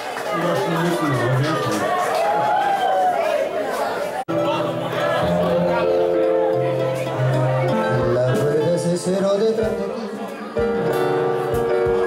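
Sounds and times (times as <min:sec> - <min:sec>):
people talking and chattering: 0:00.0 - 0:12.0
live band playing: 0:04.3 - 0:12.0.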